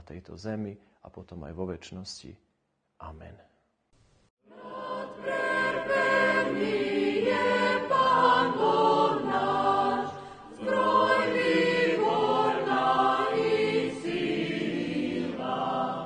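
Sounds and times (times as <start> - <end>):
choir singing sustained chords: 4.4 - 16.0.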